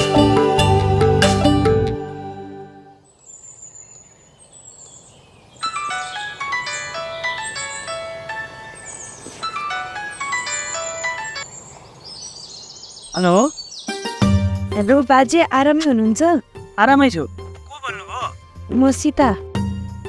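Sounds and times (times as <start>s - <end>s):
high bird chirps: 3.0s - 14.2s
bell-like melody: 5.7s - 9.0s, 9.6s - 11.4s.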